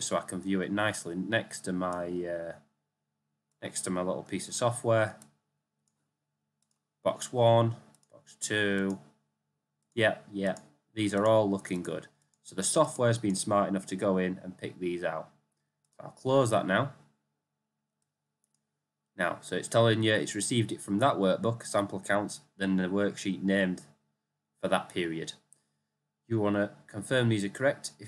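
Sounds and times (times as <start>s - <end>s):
computer mouse clicks: 6.6s - 6.8s, 7.7s - 8.1s, 8.7s - 9.1s
faint computer mouse clicks: 6.6s - 6.8s.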